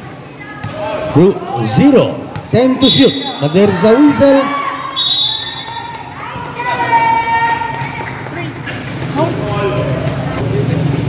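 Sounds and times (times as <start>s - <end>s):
voices and chatter: 0.0s - 11.0s
referee's whistle: 2.8s - 3.6s, 4.9s - 5.7s.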